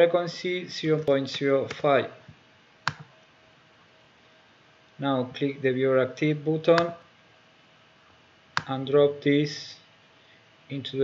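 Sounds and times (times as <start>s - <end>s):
sharp computer click: 1.2s - 1.9s, 2.9s - 3.1s, 6.7s - 7.0s, 8.6s - 8.8s.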